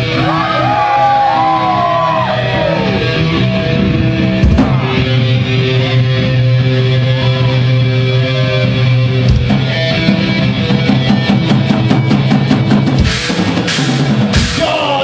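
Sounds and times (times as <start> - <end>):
bass guitar: 0.0 - 15.0
drums: 0.0 - 15.0.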